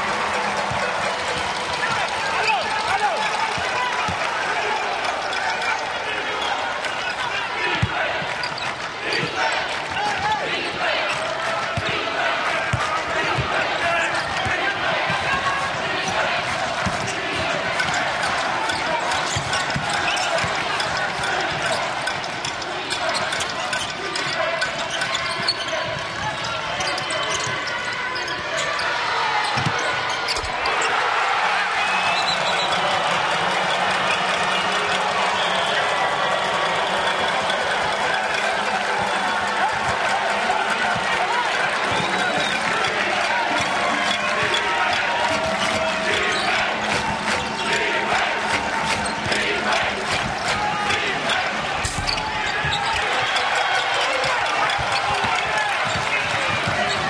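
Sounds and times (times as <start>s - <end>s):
crowd voices hubbub: 0.0s - 57.0s.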